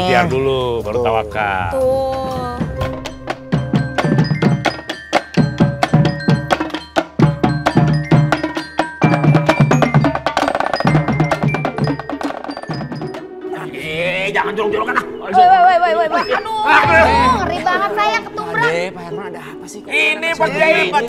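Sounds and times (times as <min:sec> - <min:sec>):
ringing bell-like notes: 0:15.2 - 0:18.6.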